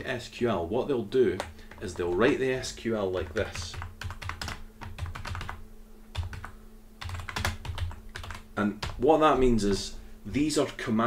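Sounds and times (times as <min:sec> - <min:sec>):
computer keyboard typing: 0:01.3 - 0:09.1.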